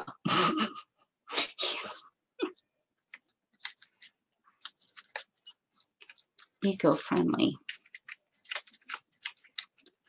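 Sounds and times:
paper pieces rustling: 3.0 - 10.0.

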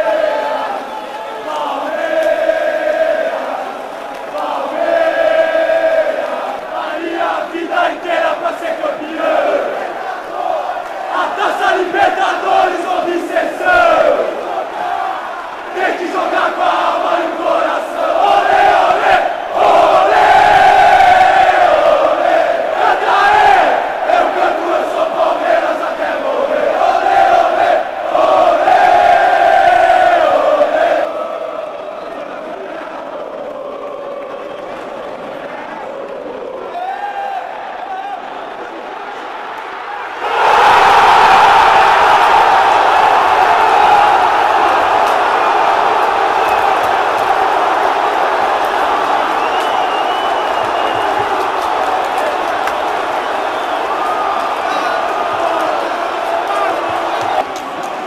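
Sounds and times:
crowd chanting and singing: 0.0 - 58.0
steady crowd noise: 0.0 - 58.0.

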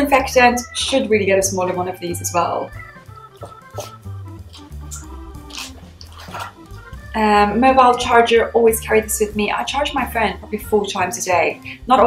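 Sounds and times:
soft organ-like background music: 0.0 - 12.0.

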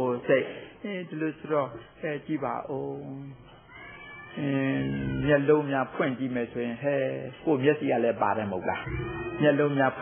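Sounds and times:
man preaching: 0.0 - 3.4, 4.4 - 10.0.

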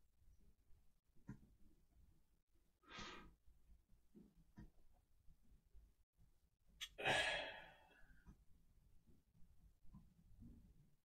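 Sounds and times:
woman sighing: 6.9 - 7.7.

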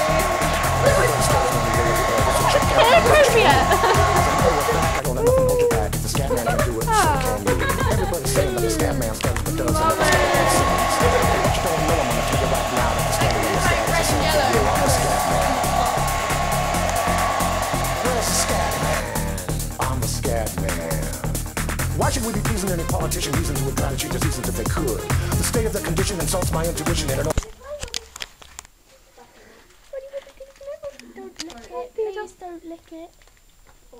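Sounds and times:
hair dryer running: 0.0 - 5.0, 6.2 - 19.7
background music with steady beat: 0.0 - 27.3.

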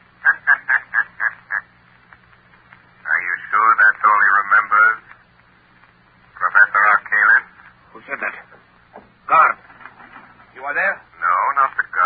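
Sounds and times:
faint low hum: 0.0 - 12.0
man laughing: 0.2 - 1.7.

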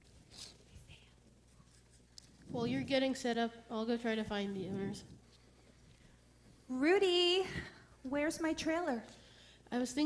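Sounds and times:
person speaking: 0.4 - 5.2.

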